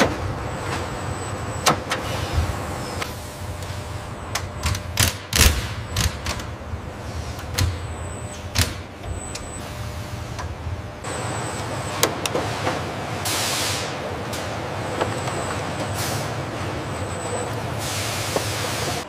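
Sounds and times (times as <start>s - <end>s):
machinery running: 0.0s - 19.0s
pneumatic air hisses: 13.2s - 14.0s, 17.8s - 19.0s.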